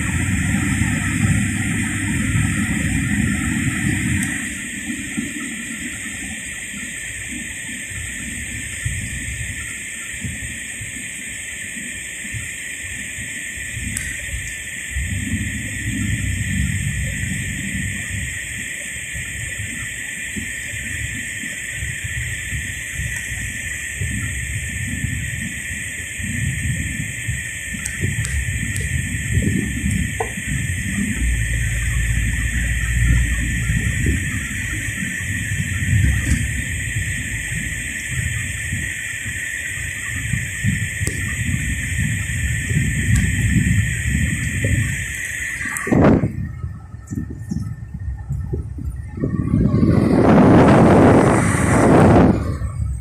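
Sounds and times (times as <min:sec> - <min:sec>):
car cabin rumble: 0:00.0 - 0:11.2, 0:12.9 - 0:53.0
rain hiss on car: 0:00.0 - 0:53.0.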